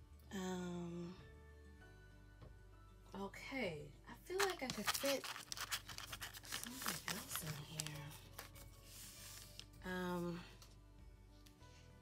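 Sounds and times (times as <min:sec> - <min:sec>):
paper and plastic rustling: 0:04.4 - 0:09.8.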